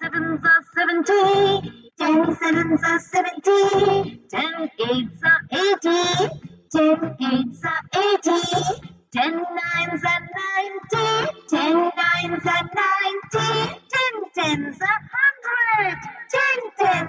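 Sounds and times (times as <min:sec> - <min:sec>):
child singing: 0:00.0 - 0:17.0.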